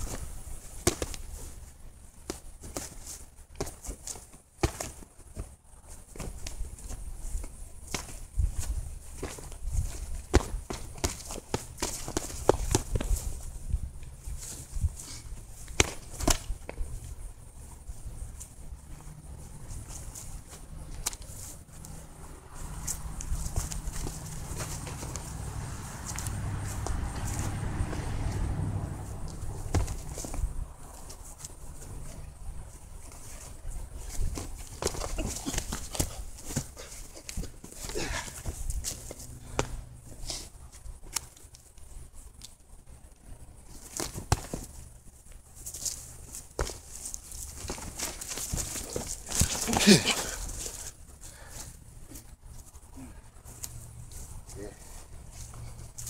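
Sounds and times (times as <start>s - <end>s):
boxing gloves smacking punch mitts: 0.0s - 1.5s, 2.2s - 13.3s, 15.6s - 16.8s, 22.8s - 31.6s, 33.1s - 39.8s, 43.8s - 44.8s, 46.4s - 50.9s
footsteps shuffling on grass: 0.0s - 40.9s.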